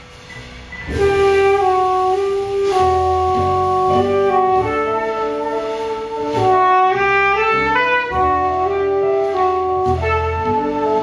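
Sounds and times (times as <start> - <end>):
double bass: 0.0 - 11.0
soft piano: 0.0 - 11.0.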